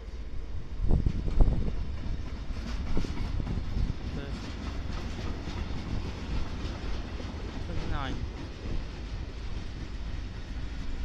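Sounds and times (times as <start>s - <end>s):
train wheels rumbling on rail: 0.0s - 11.0s.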